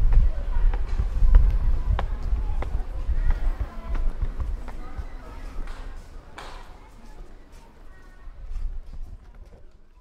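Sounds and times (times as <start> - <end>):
footsteps on stone steps: 0.0 - 10.0.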